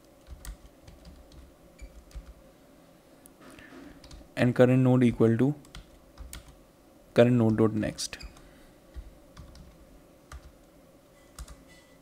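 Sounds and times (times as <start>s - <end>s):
quiet computer keystrokes: 0.0s - 2.4s, 5.1s - 6.6s, 7.4s - 10.7s, 11.3s - 11.6s.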